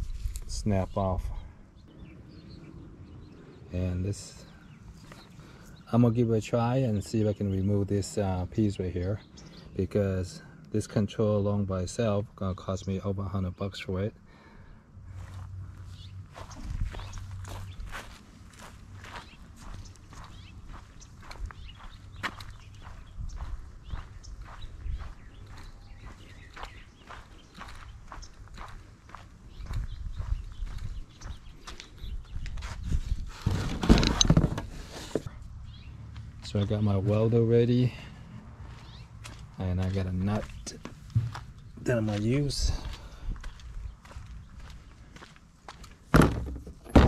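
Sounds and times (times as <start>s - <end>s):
footsteps: 15.1s - 35.3s, 38.6s - 46.7s
handling knocks and clicks: 33.4s - 35.3s.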